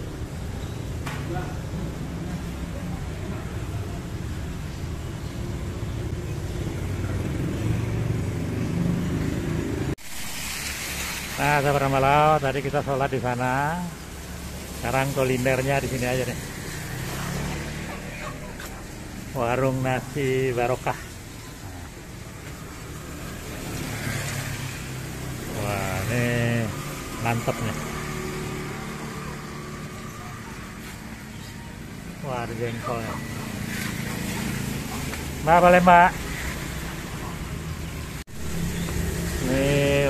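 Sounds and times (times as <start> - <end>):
road traffic rumble: 0.0 - 40.0
vehicle engine running nearby: 0.0 - 40.0
hiss of wet street: 8.9 - 32.2, 33.2 - 40.0.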